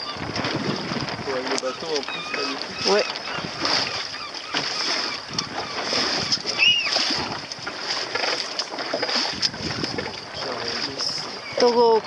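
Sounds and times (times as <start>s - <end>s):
wind on microphone: 0.0s - 8.1s, 9.1s - 12.0s
water splashing against boat hull: 0.0s - 12.0s
high chirp: 6.6s - 6.9s.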